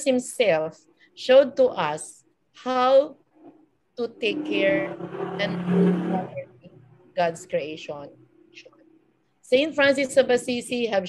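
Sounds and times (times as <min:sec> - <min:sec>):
woman speaking: 0:00.0 - 0:03.2, 0:04.0 - 0:08.7, 0:09.4 - 0:11.0.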